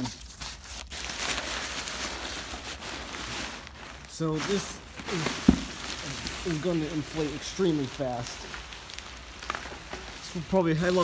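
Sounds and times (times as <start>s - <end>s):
fabric rustling and crinkling: 0.0s - 11.0s.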